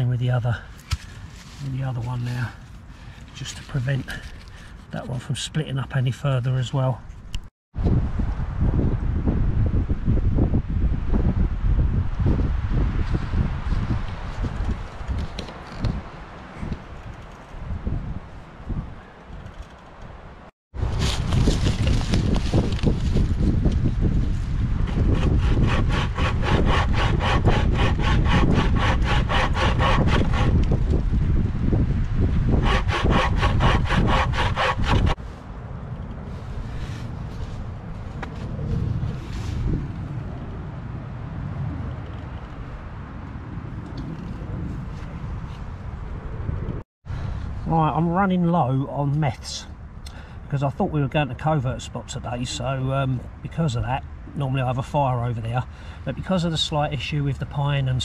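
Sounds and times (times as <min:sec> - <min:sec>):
rustling noise: 0:00.7 - 0:05.2, 0:20.8 - 0:28.4, 0:36.2 - 0:40.3
saw rasping through log: 0:24.9 - 0:30.8, 0:32.4 - 0:35.2.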